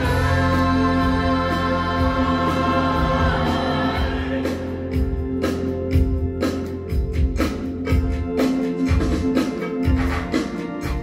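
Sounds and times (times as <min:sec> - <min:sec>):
choir holding sustained chords: 0:00.0 - 0:05.9
low instrumental accompaniment: 0:00.0 - 0:11.0.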